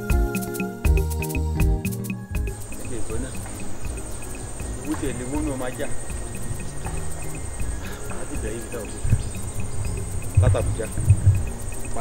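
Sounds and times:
music cue: 0:00.0 - 0:12.0
insects trilling: 0:02.4 - 0:12.0
man's low voice: 0:10.4 - 0:12.0.

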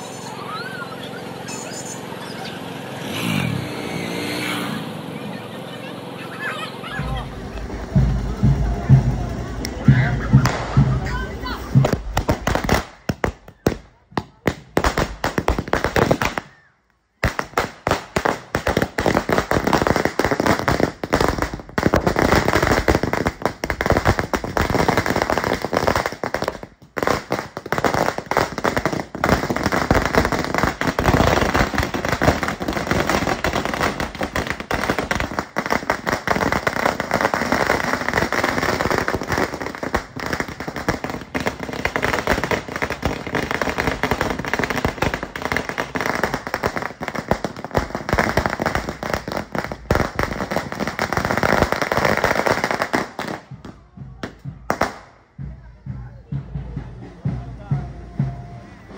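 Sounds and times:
firecrackers banging: 0:00.0 - 0:58.9.

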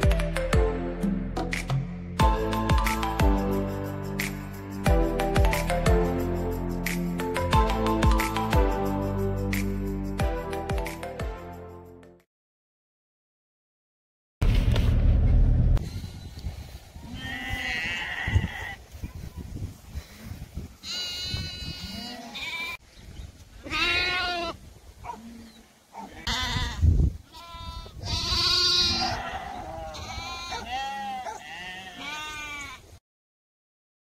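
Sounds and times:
sheep bleating: 0:17.1 - 0:18.8, 0:20.8 - 0:22.8, 0:23.7 - 0:24.6, 0:26.2 - 0:32.8.

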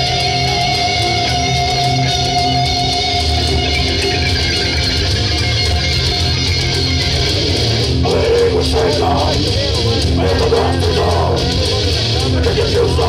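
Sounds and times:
heavy metal band playing: 0:00.0 - 0:13.0
person singing: 0:08.0 - 0:13.0.

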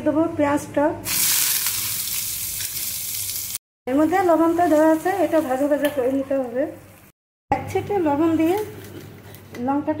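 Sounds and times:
onions sizzling in hot oil: 0:01.1 - 0:03.6.

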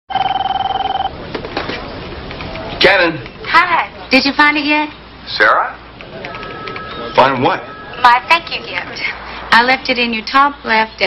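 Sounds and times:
telephone ringing: 0:00.1 - 0:01.2, 0:06.2 - 0:08.9.

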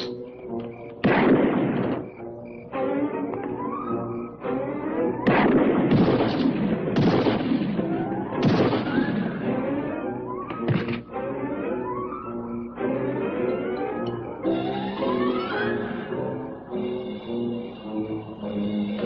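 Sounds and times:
dramatic film score music: 0:00.0 - 0:19.0
loud gunshots: 0:01.0 - 0:02.2, 0:05.2 - 0:09.8.

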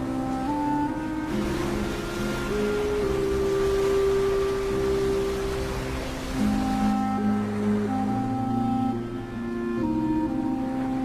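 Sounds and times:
sea noise: 0:00.0 - 0:11.0
slow film score of held notes: 0:00.0 - 0:11.0.

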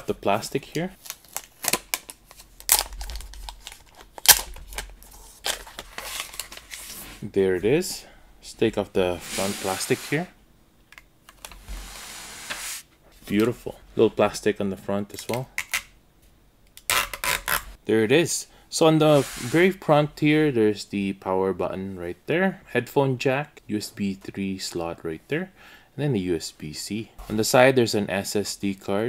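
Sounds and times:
plastic film peeling: 0:01.0 - 0:06.8, 0:16.8 - 0:17.7
film rustling: 0:01.0 - 0:07.2.

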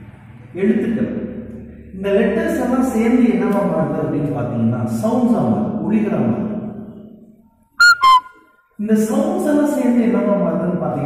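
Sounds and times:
two-note descending chime: 0:07.8 - 0:08.4.

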